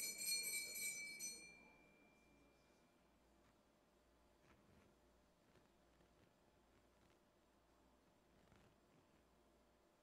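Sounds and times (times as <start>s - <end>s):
altar bells ringing: 0.0s - 2.5s.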